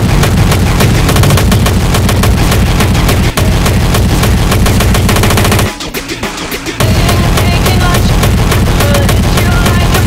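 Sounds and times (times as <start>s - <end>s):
hardcore techno with distorted hits: 0.0s - 10.0s.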